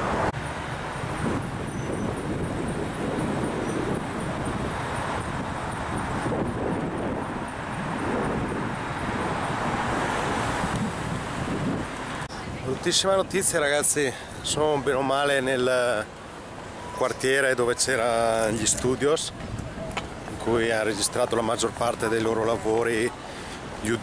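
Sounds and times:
wind buffeting microphone: 0:00.0 - 0:13.7, 0:18.2 - 0:24.0
traffic noise: 0:00.0 - 0:24.0.

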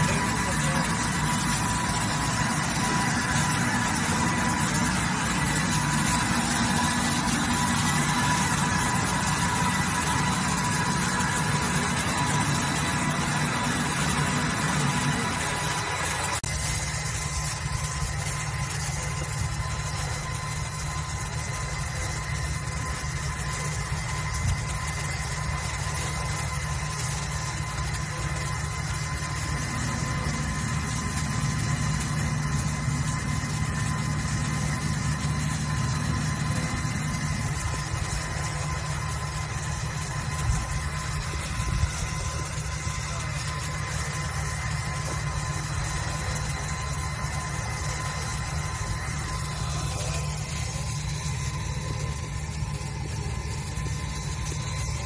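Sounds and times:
thin high whine: 0:00.0 - 0:55.0
wire saw machine hum: 0:00.0 - 0:55.0.

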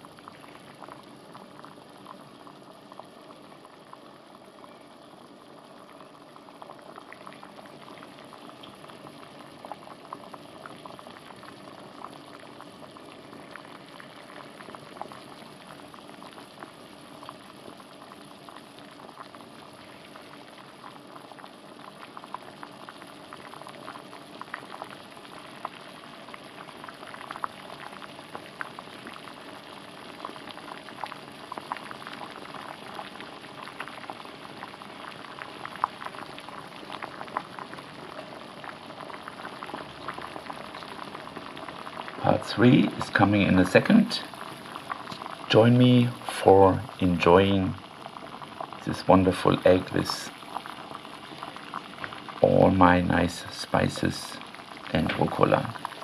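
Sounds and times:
water boiling in a pot: 0:00.0 - 0:56.0.

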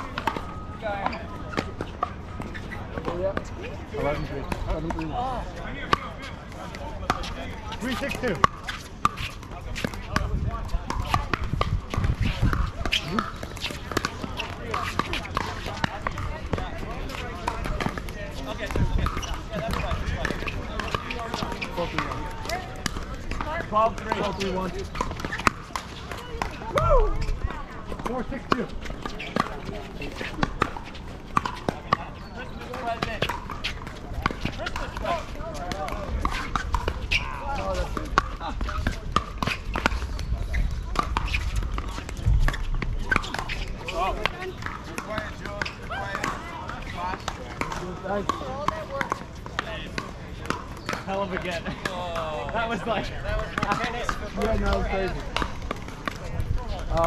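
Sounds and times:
voices talking: 0:00.0 - 0:57.0.

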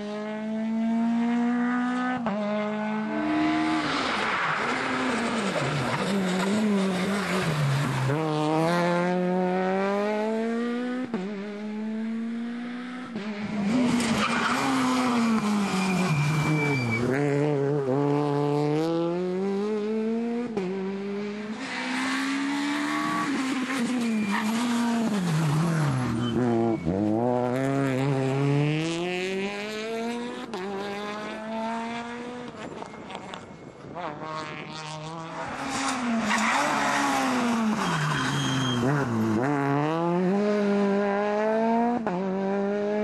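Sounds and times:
rally car engines revving: 0:00.0 - 0:43.0.

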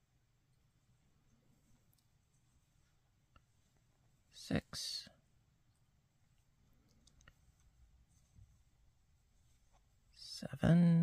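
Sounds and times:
soft yarn handling: 0:00.0 - 0:11.0
faint small clicks: 0:06.8 - 0:07.4.

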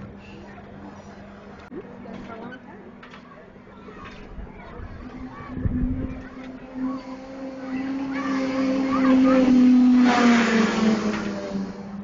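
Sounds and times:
fairground ride machinery drone: 0:00.0 - 0:12.0.

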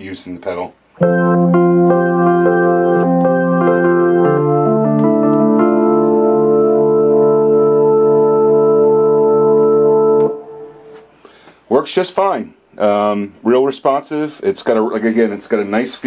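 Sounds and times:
electronic organ chords: 0:01.0 - 0:11.3.

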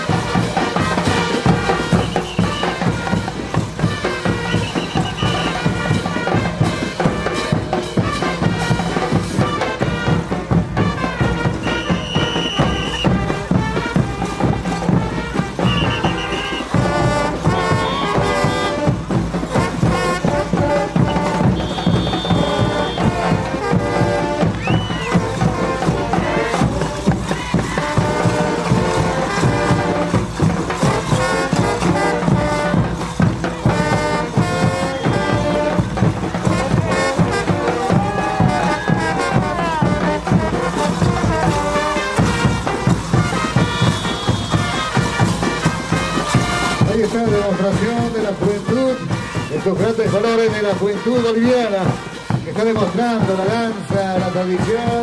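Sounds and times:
brass band playing: 0:00.0 - 0:55.0.

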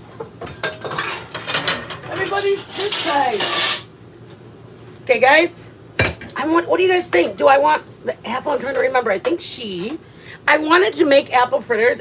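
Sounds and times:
pots and pans clinking: 0:00.0 - 0:03.9, 0:06.0 - 0:06.4, 0:07.0 - 0:07.8.

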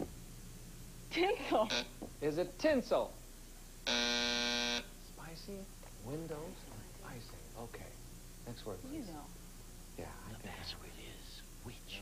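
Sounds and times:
game show buzzer: 0:01.7 - 0:01.9, 0:03.9 - 0:04.9.

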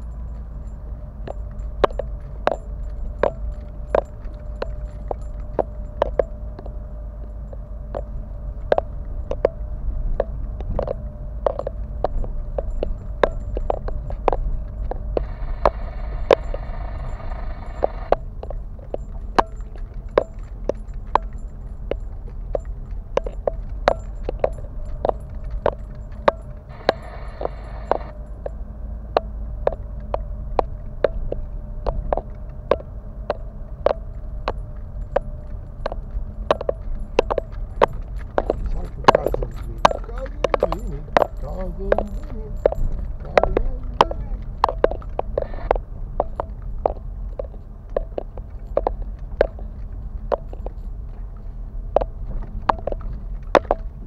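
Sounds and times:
knocks and rattles over bumps: 0:00.0 - 0:45.4
engine and tyre rumble: 0:00.0 - 0:54.0.

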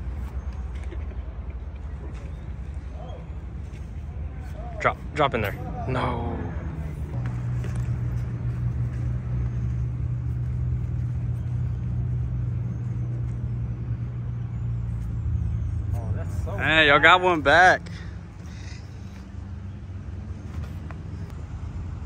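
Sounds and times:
low engine hum: 0:00.0 - 0:22.0.

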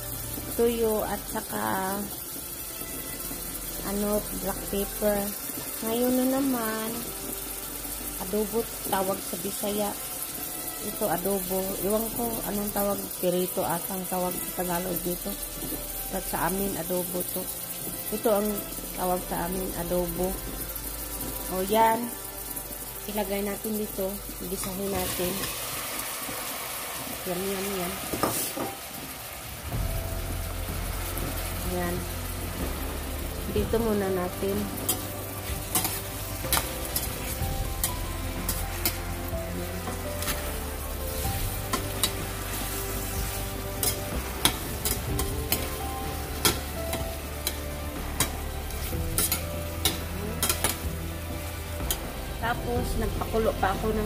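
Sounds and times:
onions sizzling in oil: 0:00.0 - 0:54.0.

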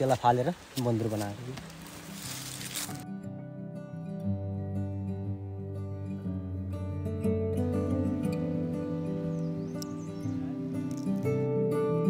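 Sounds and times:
gentle acoustic guitar music: 0:00.8 - 0:12.0.

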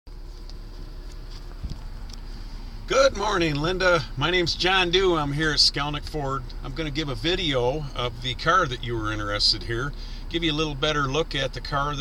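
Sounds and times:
low rumble: 0:00.1 - 0:11.8.

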